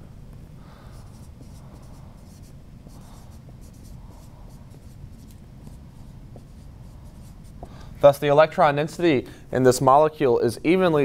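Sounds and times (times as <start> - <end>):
marker writing on a whiteboard: 0.9 - 7.8.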